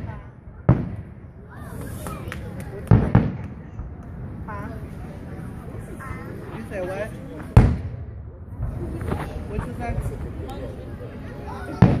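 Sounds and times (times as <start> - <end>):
faint firework pops: 0.0 - 4.2.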